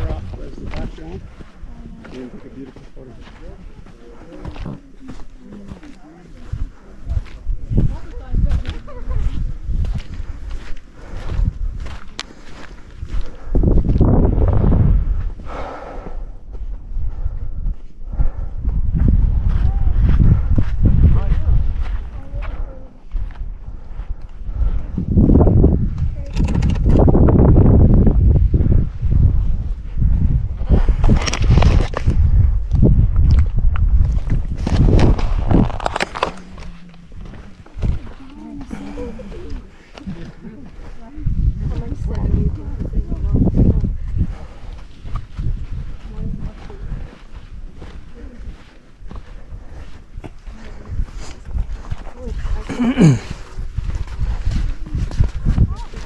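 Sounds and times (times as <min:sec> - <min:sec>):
footsteps in loose sand: 0:00.0 - 0:26.2, 0:27.2 - 0:56.0
wind rumbling on microphone: 0:00.0 - 0:56.0.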